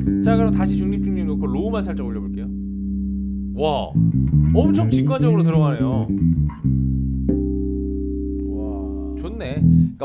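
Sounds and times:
electric bass played fingerstyle: 0.0 - 10.0.

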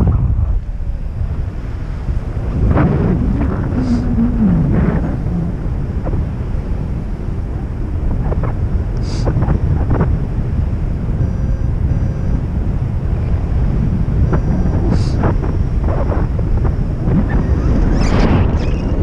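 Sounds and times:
wind rumbling over microphone: 0.0 - 19.0.

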